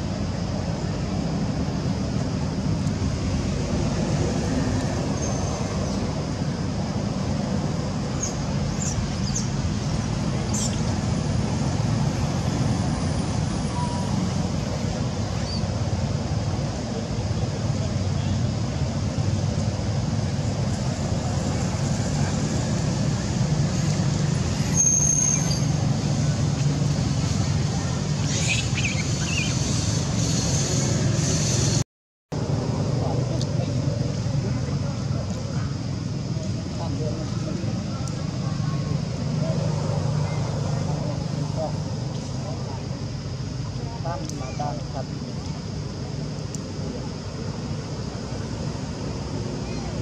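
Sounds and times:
continuous low rumble: 0:00.0 - 0:50.0.

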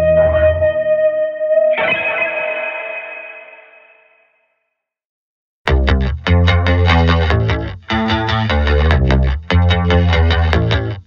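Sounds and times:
effects-laden guitar ringing: 0:00.0 - 0:04.4.

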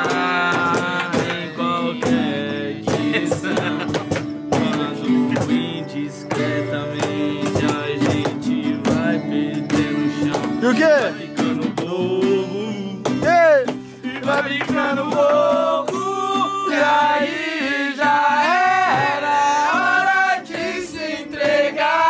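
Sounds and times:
acoustic guitar strumming chords: 0:00.0 - 0:22.0
men singing: 0:00.0 - 0:22.0.

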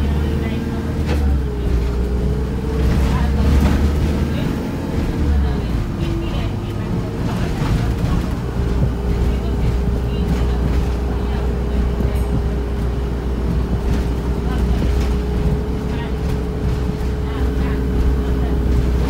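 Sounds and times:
bus body rattles: 0:00.0 - 0:19.0
bus engine droning: 0:00.0 - 0:19.0
constant whine: 0:00.0 - 0:19.0.

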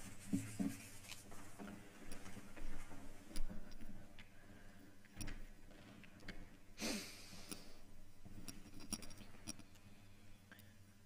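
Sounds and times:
paper shuffling: 0:00.0 - 0:02.4.

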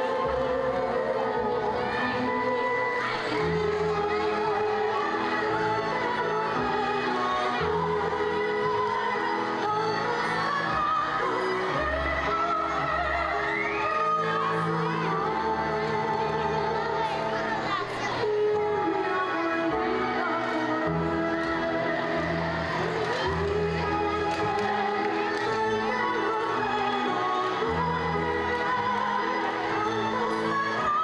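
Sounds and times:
person singing: 0:00.0 - 0:31.0.

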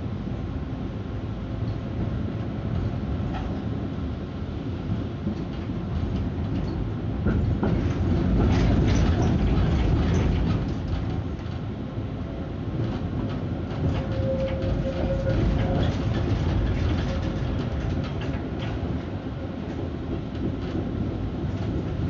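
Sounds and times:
tram rumbling along track: 0:00.0 - 0:22.0.

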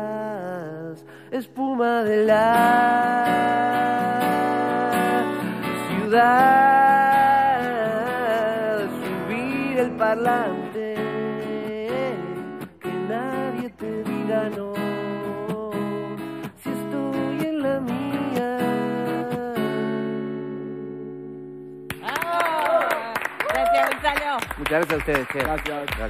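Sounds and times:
acoustic guitar playing: 0:00.0 - 0:22.0
people clapping: 0:21.9 - 0:26.0.

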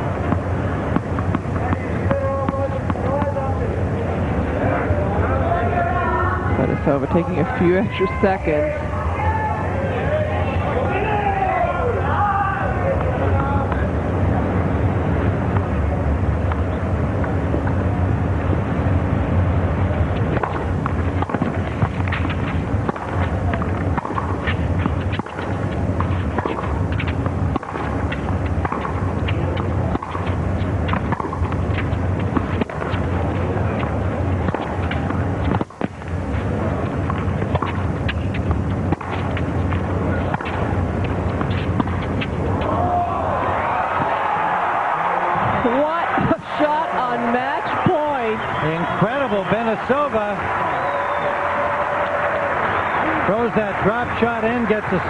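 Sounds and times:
crowd murmuring: 0:00.5 - 0:55.0
claps and calls: 0:50.4 - 0:54.2.

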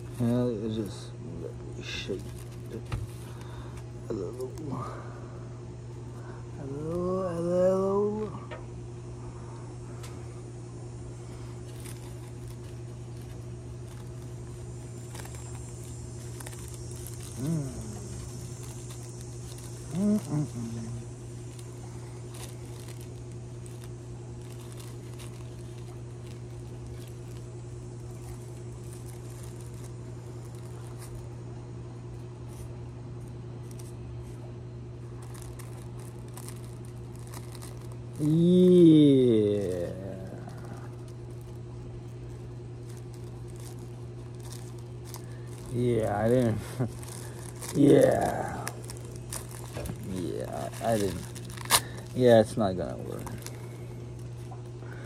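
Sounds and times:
rolling paper crinkling: 0:00.0 - 0:05.1, 0:11.2 - 0:55.0
steady low hum: 0:00.0 - 0:55.0
person humming: 0:06.6 - 0:08.6, 0:17.2 - 0:18.5, 0:19.8 - 0:21.1, 0:38.1 - 0:41.1, 0:47.6 - 0:49.0.

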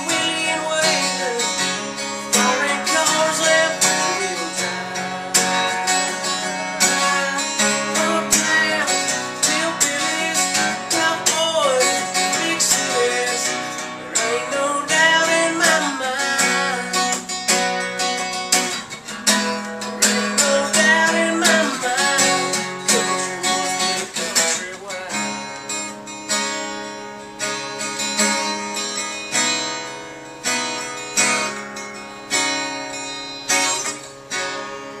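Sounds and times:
man singing: 0:00.0 - 0:17.5, 0:19.3 - 0:25.8
acoustic guitar strumming: 0:00.0 - 0:35.0.

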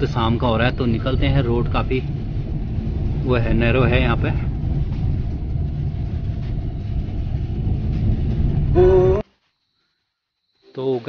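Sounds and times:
car engine and tyres rumbling: 0:00.0 - 0:09.2.

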